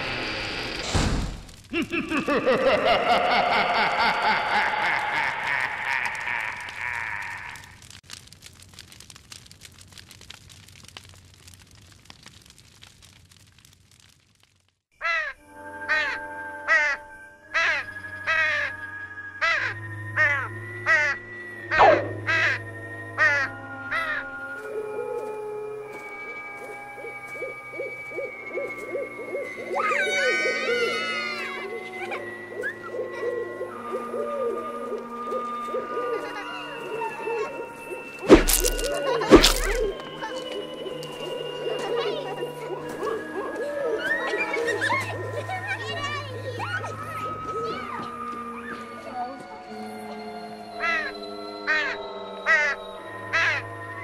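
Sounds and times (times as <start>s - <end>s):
eerie music drone: 0.0s - 0.9s, 2.0s - 7.2s, 15.3s - 54.0s
crow cawing: 3.8s - 7.7s, 15.0s - 17.0s, 19.4s - 24.4s, 27.1s - 33.8s, 50.8s - 53.8s
wavering pitched sound: 21.6s - 22.8s.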